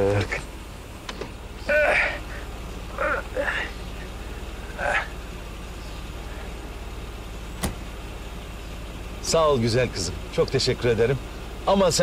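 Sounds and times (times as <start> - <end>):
car engine idling: 0.0 - 12.0
car door shutting: 1.0 - 1.4, 7.6 - 7.9.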